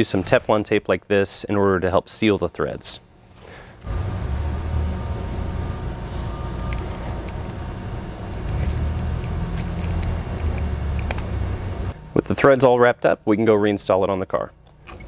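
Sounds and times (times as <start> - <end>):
low machinery rumble: 3.8 - 12.6.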